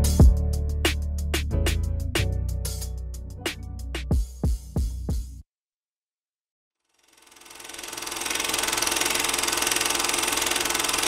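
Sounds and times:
film camera mechanical rattle: 7.6 - 11.0.

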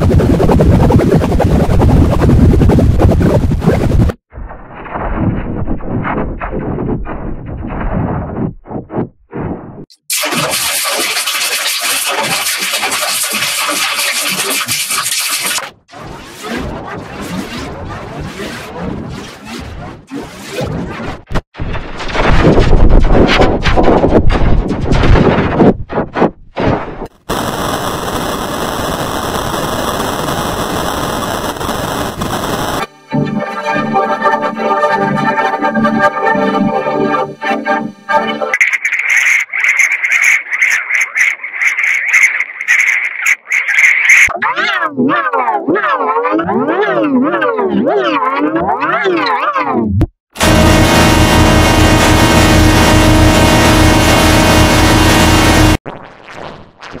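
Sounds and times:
distorted harsh logo audio: 10.0 - 20.9, 50.4 - 57.0
organ-like sustained tone: 50.4 - 55.8.

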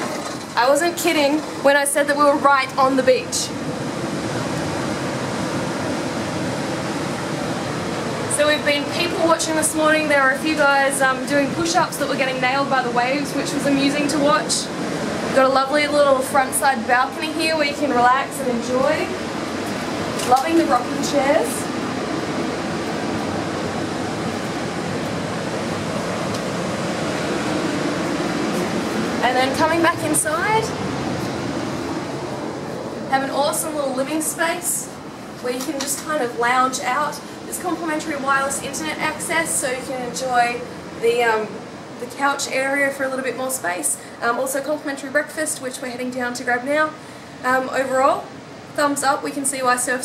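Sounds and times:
ocean surf breaking: 0.0 - 42.2
faint steady hum: 0.0 - 50.0.

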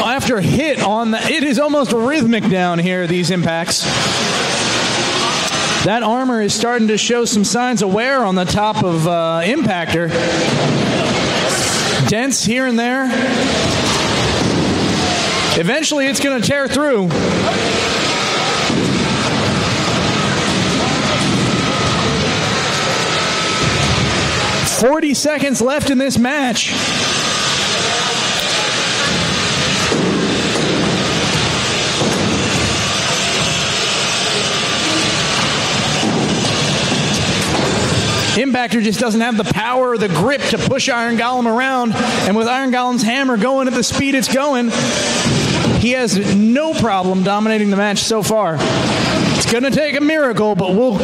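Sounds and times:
hall noise: 0.0 - 51.0
noisy rumble and hiss: 0.0 - 51.0
combat robots driving and striking: 28.3 - 38.4.

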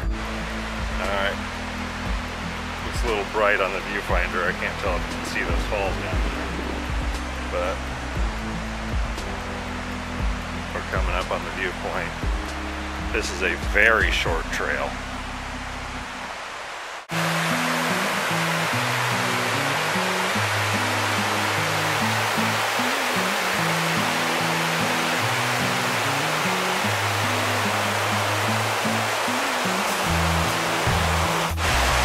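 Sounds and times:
low background music: 0.0 - 16.2, 17.2 - 32.0
creek rapids and waterfall: 0.0 - 32.0.

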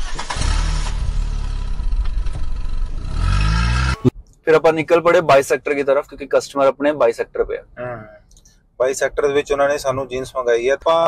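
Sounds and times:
vehicle engine revving: 0.0 - 4.2.

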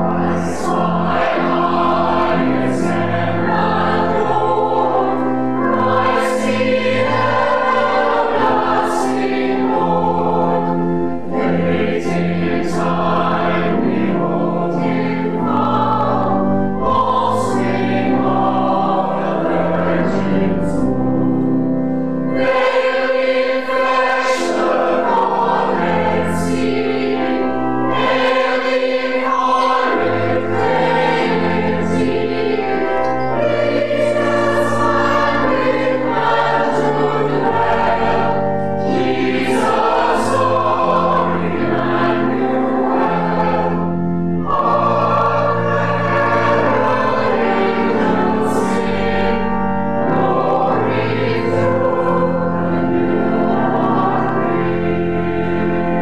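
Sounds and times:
choir singing a carol: 0.0 - 56.0.

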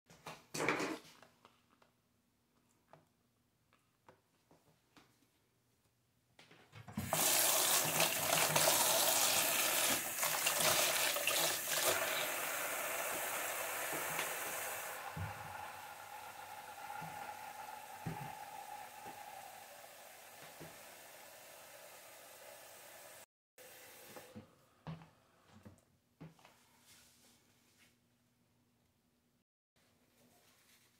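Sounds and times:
faucet running into metal tub: 7.0 - 23.2.

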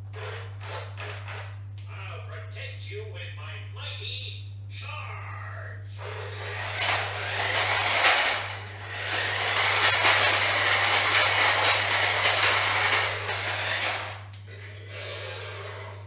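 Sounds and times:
toy car motor whirring: 6.0 - 14.3
plastic wheels rattling on tiles: 6.6 - 14.3.

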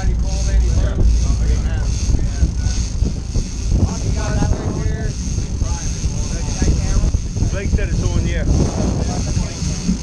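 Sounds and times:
boat engines: 0.0 - 10.0
wind on microphone: 0.0 - 10.0.

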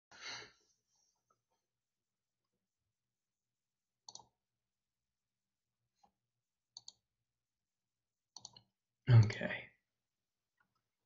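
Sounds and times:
computer mouse clicking: 4.0 - 4.4, 6.7 - 7.0, 8.3 - 8.7.

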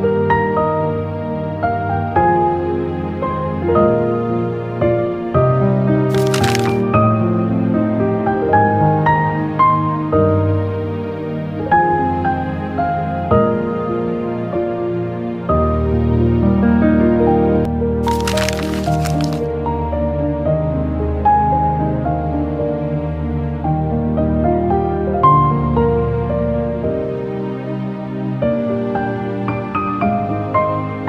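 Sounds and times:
brief crackling noise: 6.1 - 6.9, 18.0 - 19.5.

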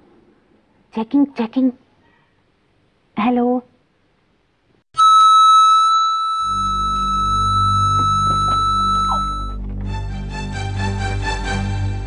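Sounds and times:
microphone feedback squeal: 5.0 - 9.6.

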